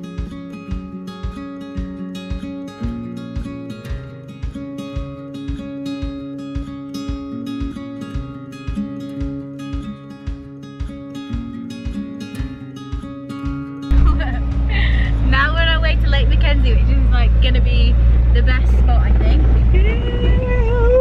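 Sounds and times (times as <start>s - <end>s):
acoustic guitar strumming: 0.0s - 21.0s
off-road vehicle rumble inside cabin: 13.9s - 21.0s.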